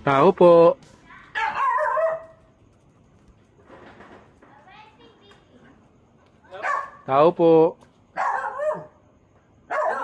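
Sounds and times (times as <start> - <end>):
dog barking: 1.4 - 2.4, 6.5 - 7.1, 8.2 - 9.0, 9.7 - 10.0.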